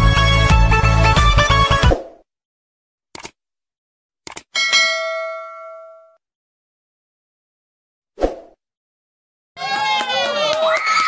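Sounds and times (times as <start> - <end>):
mouse click: 4.3 - 4.5
bell ding: 4.6 - 6.2.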